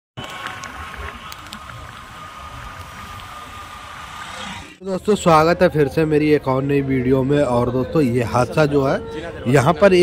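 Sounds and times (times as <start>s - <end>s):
auto-rickshaw approaching: 0.2s - 8.9s.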